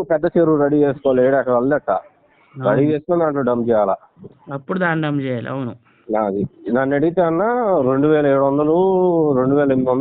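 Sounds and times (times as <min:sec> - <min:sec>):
man speaking over phone line: 0:00.0 - 0:04.6, 0:06.1 - 0:10.0.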